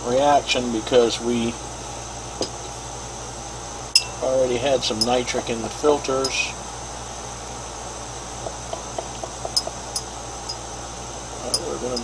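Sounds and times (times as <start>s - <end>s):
steady background hum: 0.0s - 12.0s
glass rod clinking in beaker: 4.0s - 4.2s, 9.4s - 10.6s, 11.5s - 12.0s.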